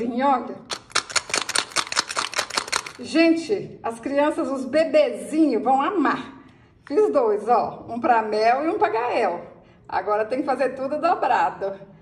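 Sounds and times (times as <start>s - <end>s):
rattle shaken rapid clicking: 0.6s - 3.2s.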